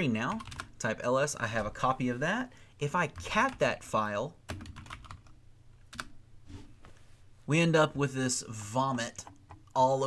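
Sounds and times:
computer keyboard keystrokes: 0.3 - 0.7, 4.5 - 6.1.

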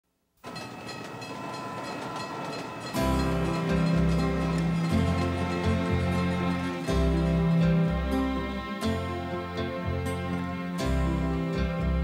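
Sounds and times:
train rumbling past: 0.4 - 11.8
music with held bass notes: 3.0 - 12.0.

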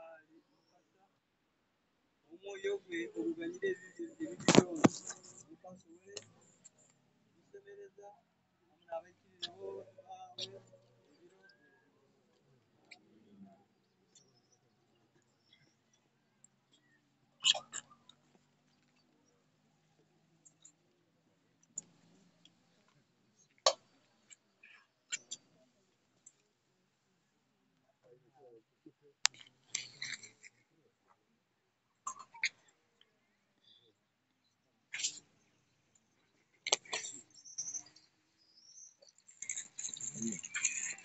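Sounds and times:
small animal chirping: 17.4 - 18.0, 36.9 - 41.0.

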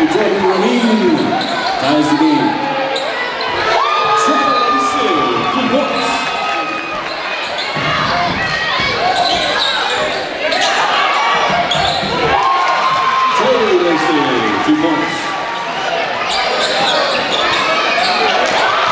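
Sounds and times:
shoes squeaking: 0.5 - 3.8, 6.9 - 12.3, 16.2 - 18.6.

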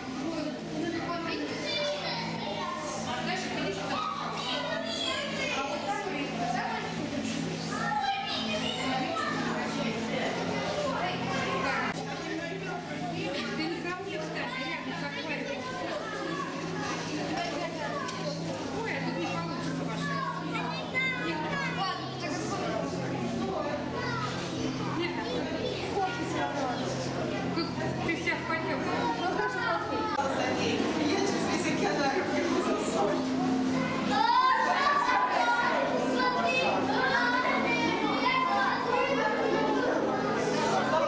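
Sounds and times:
chatter of visitors: 0.0 - 41.0
children's voices: 0.0 - 41.0.

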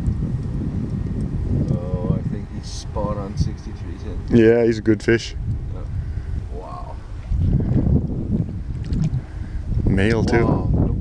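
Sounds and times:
wind rumbling on microphone: 0.0 - 11.0
fish splashing at surface: 8.7 - 9.2.

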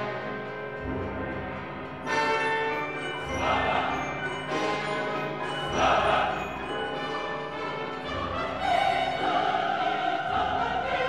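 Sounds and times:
bells ringing: 0.0 - 9.4
orchestra playing: 0.0 - 11.0.

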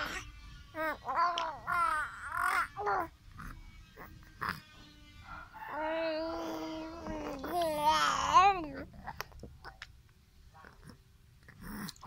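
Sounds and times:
baby cooing and babbling: 0.0 - 4.7, 5.6 - 9.2.

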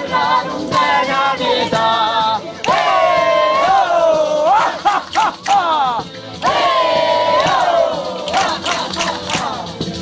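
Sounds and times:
group singing folk song: 0.0 - 10.0.

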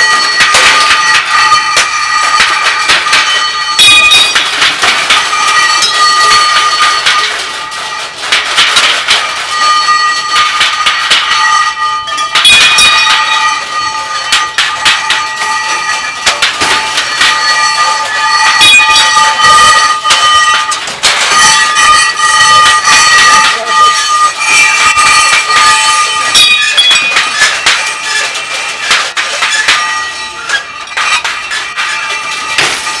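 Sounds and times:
high ringing tones: 0.0 - 33.0
metal objects clattering: 0.0 - 33.0.

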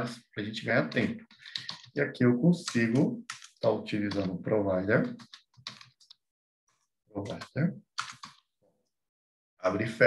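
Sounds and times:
computer keyboard keystrokes: 0.9 - 1.9, 5.1 - 6.2, 8.0 - 8.4.

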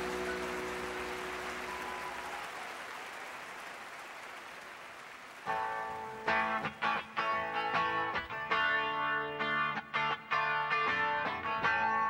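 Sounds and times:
audience applauding and cheering: 0.0 - 7.1.

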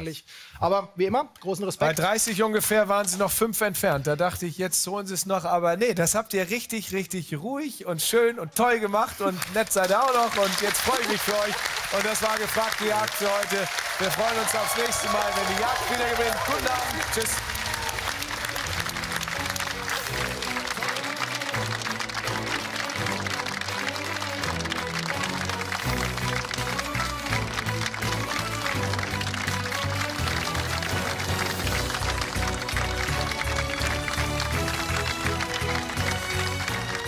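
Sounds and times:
game show theme music: 8.7 - 37.0
studio audience applause: 9.0 - 37.0.

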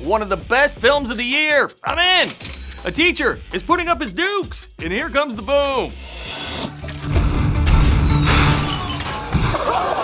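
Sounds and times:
loud low music: 4.8 - 8.5
falling whistle: 7.8 - 8.6.

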